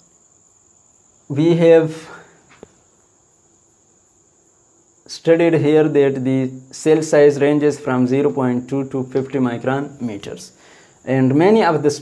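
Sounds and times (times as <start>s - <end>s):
person speaking: 1.3s - 2.4s, 5.1s - 12.0s.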